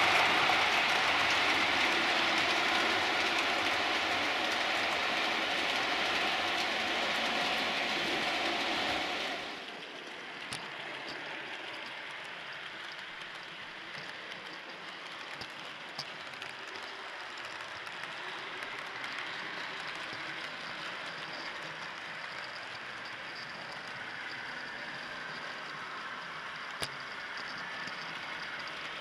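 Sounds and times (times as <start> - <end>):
model train wheels rattling: 0.0 - 29.0.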